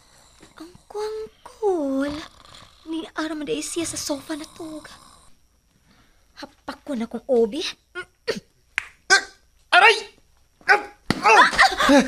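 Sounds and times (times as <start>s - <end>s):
dog barking: 10.7s - 11.0s.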